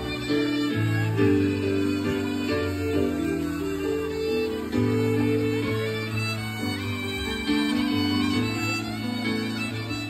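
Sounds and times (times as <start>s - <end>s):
fiddle melody: 0.0s - 10.0s.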